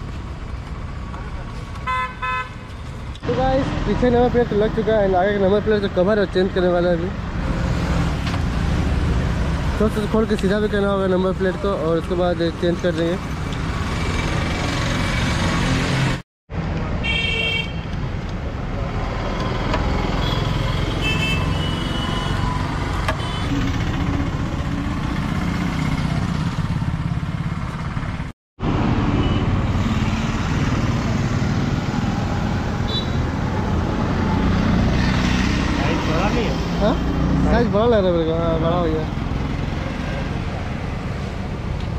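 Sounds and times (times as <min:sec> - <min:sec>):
rumble of passing vehicles: 0:00.0 - 0:41.9
vehicle horn toots: 0:01.8 - 0:02.6, 0:20.2 - 0:22.4, 0:23.1 - 0:23.6.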